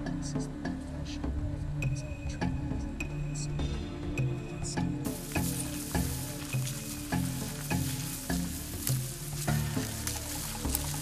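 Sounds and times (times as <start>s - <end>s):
stems rustling against legs: 5.0s - 11.0s
footsteps crunching in dry grass: 5.1s - 11.0s.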